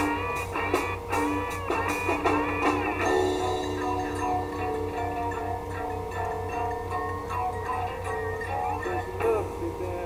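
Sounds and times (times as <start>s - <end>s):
blues guitar solo: 0.0s - 9.4s
steady low hum: 0.0s - 10.0s.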